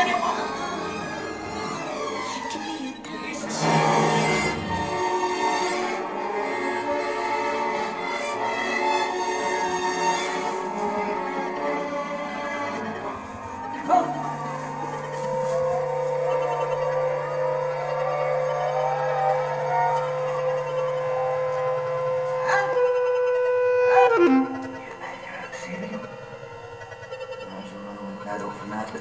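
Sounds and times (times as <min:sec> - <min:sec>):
low electronic tone: 0:00.0 - 0:06.3
bass clarinet long note: 0:03.6 - 0:07.1, 0:09.8 - 0:25.1.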